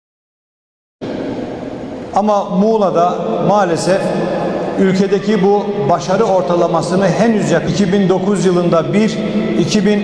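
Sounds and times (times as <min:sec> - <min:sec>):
rushing room noise: 0:01.0 - 0:10.0.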